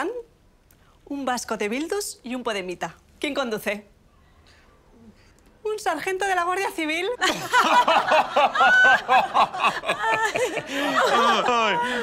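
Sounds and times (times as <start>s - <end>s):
people laughing loudly: 7.2s - 12.0s.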